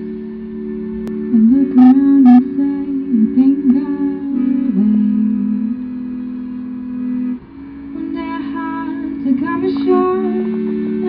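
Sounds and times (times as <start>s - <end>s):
accordion playing chords: 1.7s - 2.4s.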